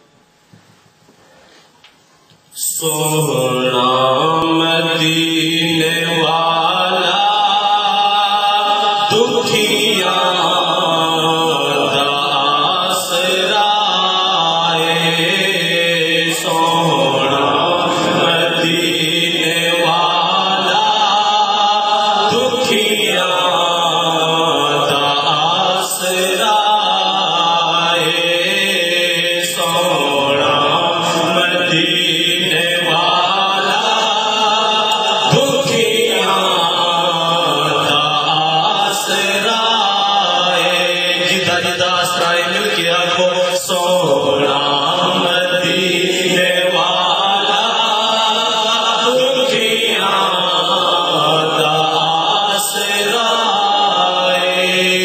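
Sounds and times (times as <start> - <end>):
man chanting over a pa: 2.5 - 55.0.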